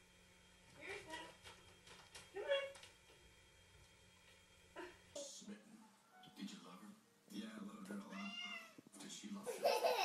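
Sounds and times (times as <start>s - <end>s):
cat meowing: 8.1s - 8.8s.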